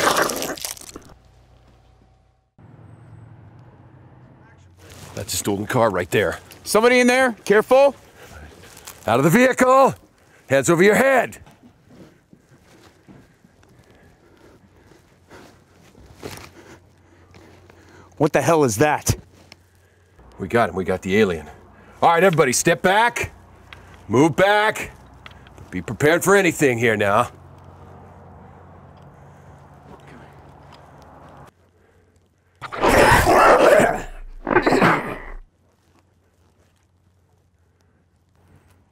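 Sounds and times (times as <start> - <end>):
creature growls: 0.0 - 1.0, 32.6 - 35.4.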